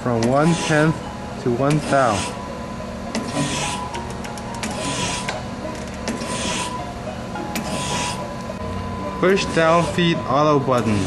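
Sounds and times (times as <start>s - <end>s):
machine hum: 0.0s - 11.0s
surface grinder rasping hiss: 0.3s - 1.0s, 1.7s - 2.4s, 3.2s - 4.0s, 4.6s - 5.4s, 6.1s - 6.9s, 7.5s - 8.3s, 9.3s - 11.0s.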